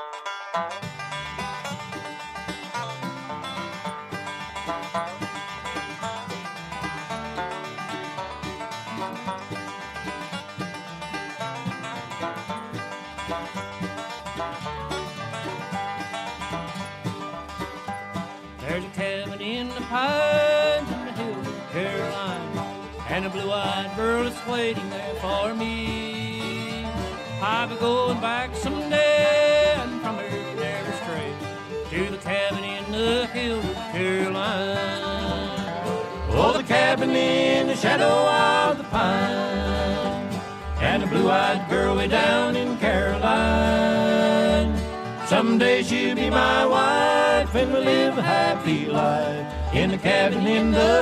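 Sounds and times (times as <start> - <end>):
banjo: 0.0 - 51.0
guitar: 0.0 - 51.0.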